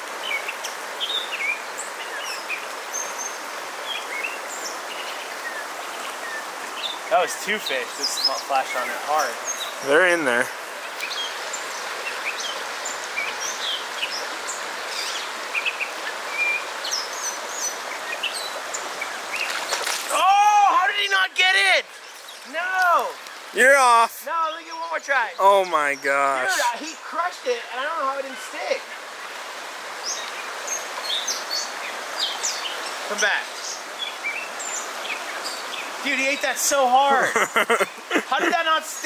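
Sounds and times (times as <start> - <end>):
fast-flowing river water: 0.0 - 39.0.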